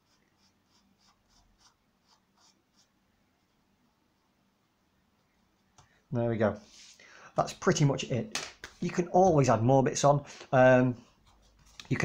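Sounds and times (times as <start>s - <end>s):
pastel stick scratching paper: 0.0s - 3.0s.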